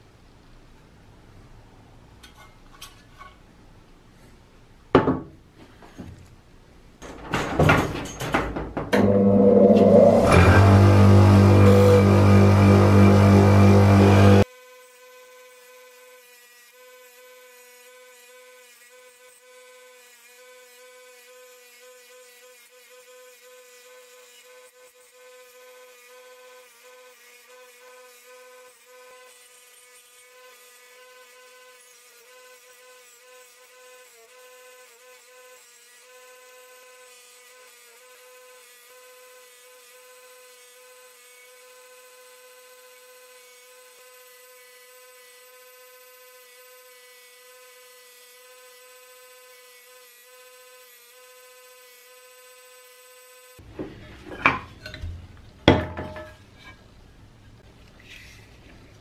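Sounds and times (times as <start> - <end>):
loud knocks: 7.0 - 9.5
bench grinder whine: 8.3 - 14.4.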